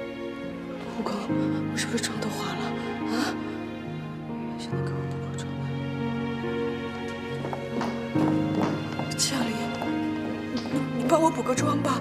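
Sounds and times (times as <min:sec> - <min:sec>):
background music: 0:00.0 - 0:12.0
high heels clicking on hard floor: 0:07.0 - 0:11.5.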